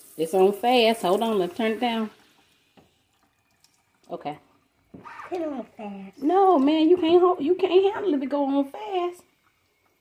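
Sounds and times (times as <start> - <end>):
water spraying onto hair: 0.0 - 2.4.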